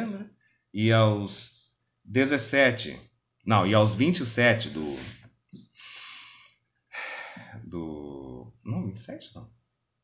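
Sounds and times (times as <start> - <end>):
man breathing close to microphone: 5.7 - 7.6.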